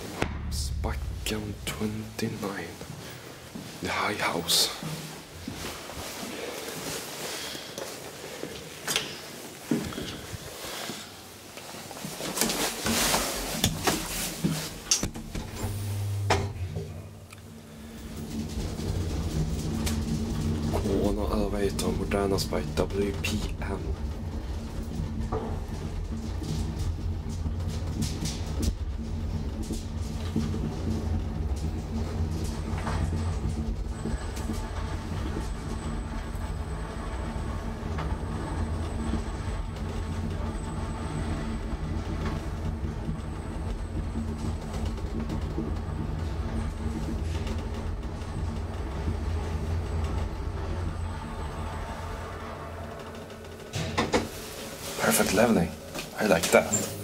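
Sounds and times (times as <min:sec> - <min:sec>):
elevator running in shaft: 0:00.0 - 0:10.9, 0:11.6 - 0:57.0.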